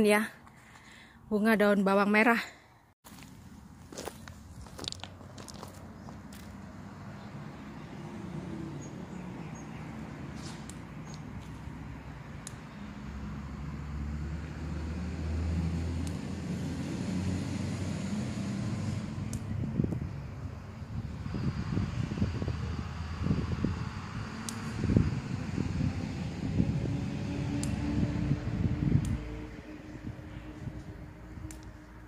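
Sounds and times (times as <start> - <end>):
sharp clicks: 12.3 - 12.8, 16.0 - 16.3, 19.2 - 20.1, 24.4 - 24.8
steady low rumble: 18.9 - 32.0.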